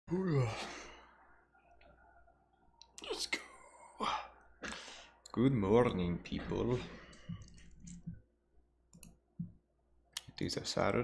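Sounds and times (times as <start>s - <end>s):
man sighing: 0.1s - 0.9s.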